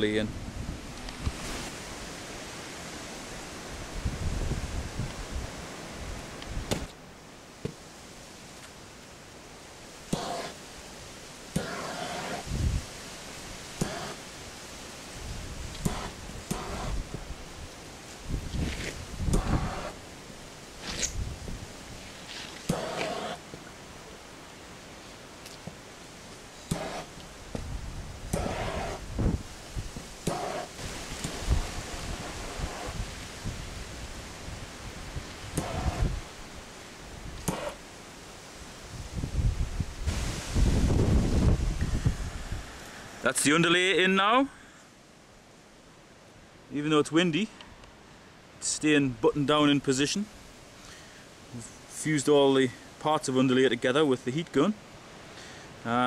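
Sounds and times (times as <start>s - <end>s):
wind buffeting microphone: 3.5s - 6.9s, 12.4s - 13.0s, 15.1s - 20.0s, 20.8s - 22.1s, 26.7s - 36.5s, 38.9s - 42.8s
fabric rustling and scuffing: 21.9s - 23.2s.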